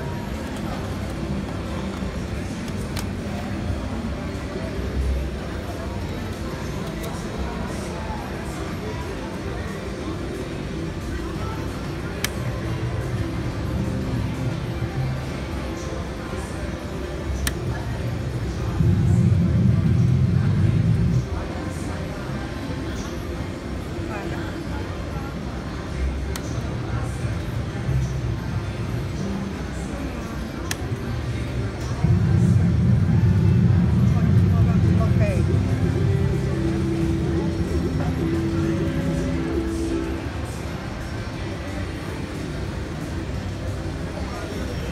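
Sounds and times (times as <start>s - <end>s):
casino background noise: 0.0s - 44.9s
bass-heavy swell: 18.5s - 21.4s, 31.6s - 41.2s
electronic music: 32.0s - 40.8s.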